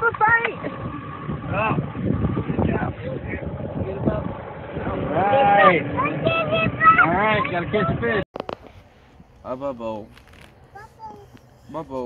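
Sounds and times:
boat low rumbling: 0:00.0 - 0:12.0.

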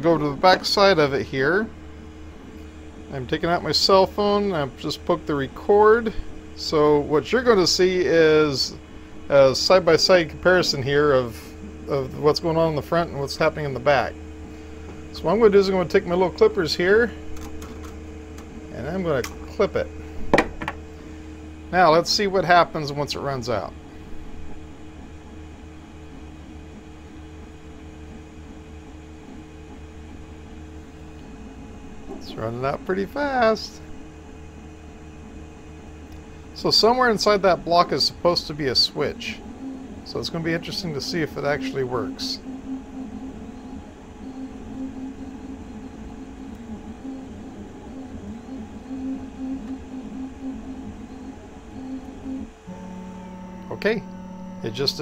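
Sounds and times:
fan hum: 0:00.0 - 0:55.0
stepper motors whirring: 0:26.0 - 0:55.0.

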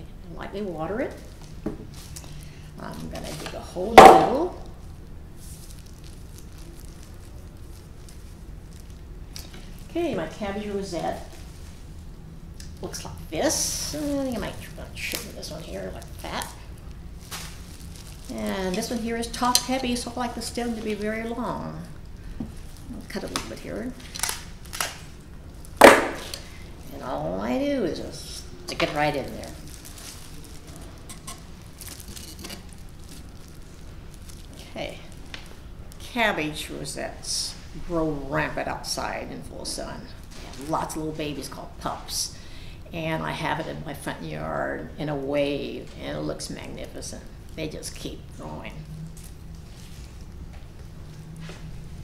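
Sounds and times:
low steady hum: 0:00.0 - 0:52.0.

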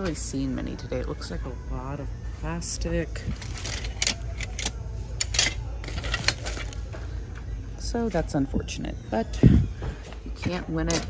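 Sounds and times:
metal utensils clinking in bin: 0:03.3 - 0:06.8, 0:10.8 - 0:11.0.

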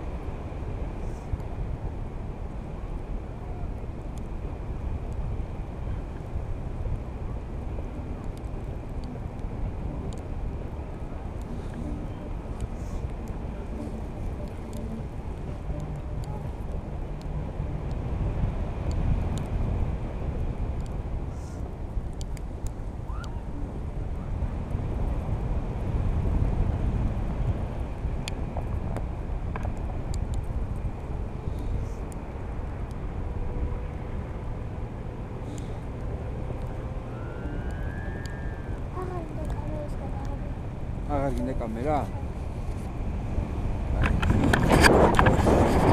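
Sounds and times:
wind rushing over microphone: 0:00.0 - 0:45.9
faint clicks: 0:22.1 - 0:23.4.

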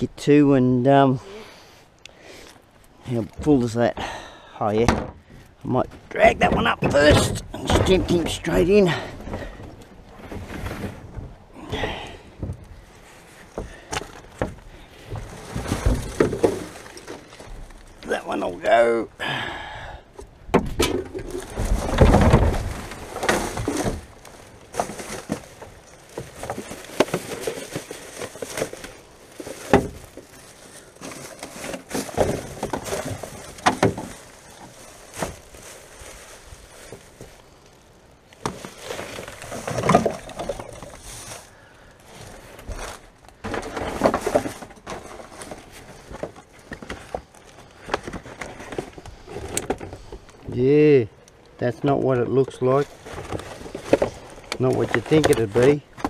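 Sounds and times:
plastic bags rustling: 0:12.6 - 0:18.8, 0:20.9 - 0:50.5, 0:52.4 - 0:56.0.

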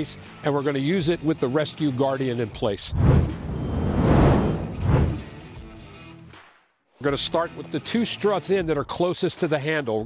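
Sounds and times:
low thud: 0:02.9 - 0:05.3
whoosh: 0:02.9 - 0:05.4.

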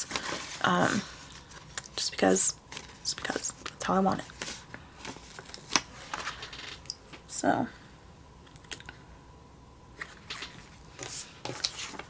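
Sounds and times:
sticker sheet rustling: 0:10.0 - 0:12.0.

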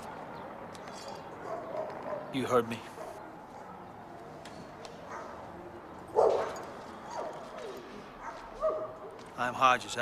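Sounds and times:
dog barking: 0:00.0 - 0:02.3, 0:02.9 - 0:03.9, 0:05.1 - 0:05.4, 0:06.1 - 0:09.1.

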